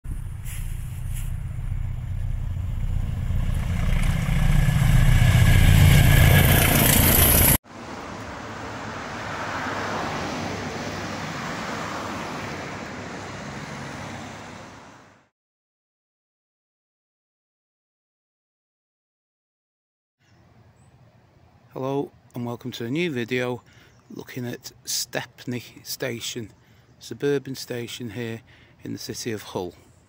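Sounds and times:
road traffic: 0.0 - 15.3, 23.6 - 28.9
train rumble and rail noise: 0.1 - 7.6.

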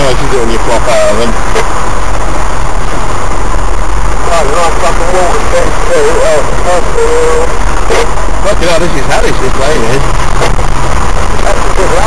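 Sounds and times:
engine rumbling from inside cab: 0.0 - 12.0.

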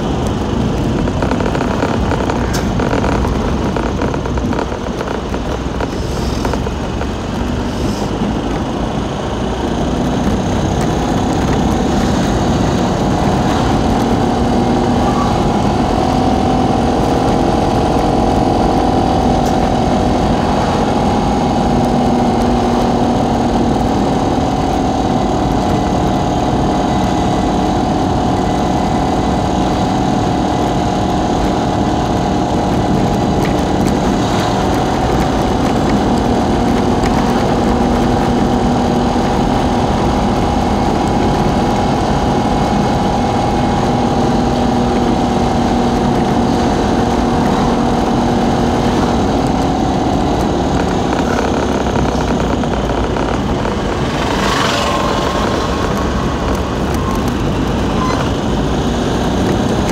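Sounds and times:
continuous whine: 0.0 - 59.9
vehicle engine and road drone: 0.0 - 59.9.

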